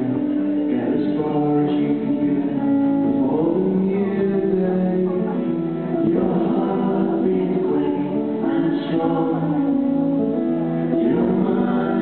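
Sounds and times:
acoustic guitars: 0.0 - 12.0
voices singing in harmony: 0.0 - 12.0.

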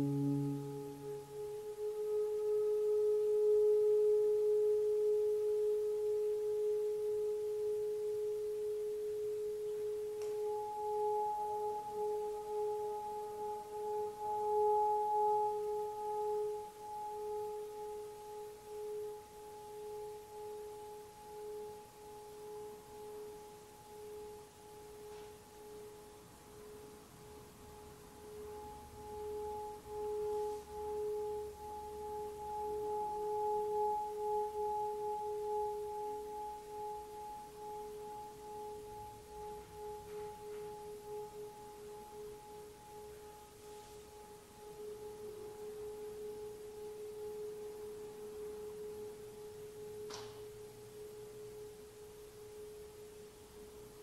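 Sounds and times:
long wavering musical tone: 0.0 - 54.0.

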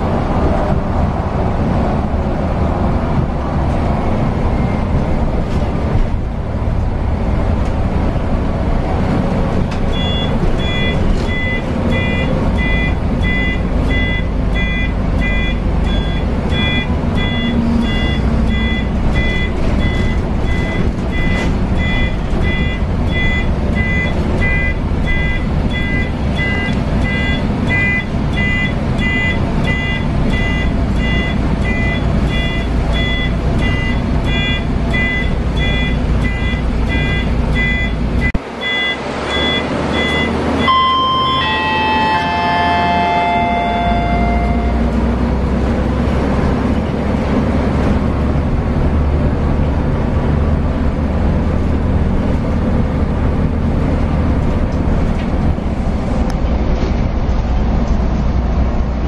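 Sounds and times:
bus engine rumble: 0.0 - 59.0
repeating electronic beep: 10.0 - 44.8.

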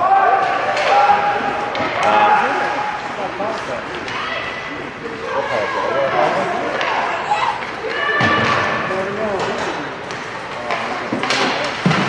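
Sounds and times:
spectators' voices: 0.0 - 12.0
thud: 11.2 - 12.0.

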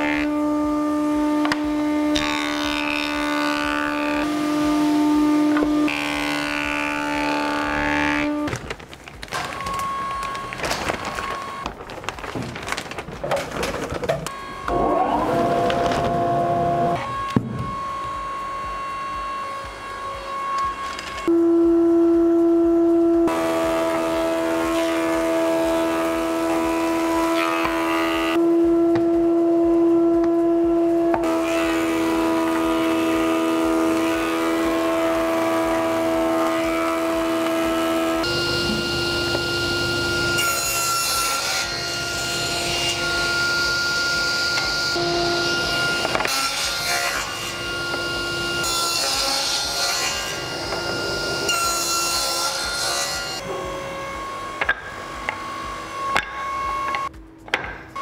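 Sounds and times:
table saw cutting wood: 0.0 - 8.6, 14.2 - 58.0
woodworking machine hum: 0.0 - 58.0.

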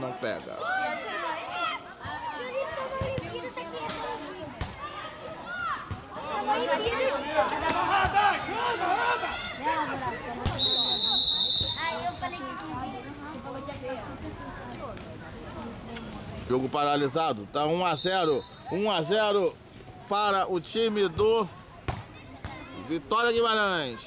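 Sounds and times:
people talking and shouting: 0.0 - 24.0
referee's whistle blast: 10.5 - 11.8, 17.9 - 18.7.

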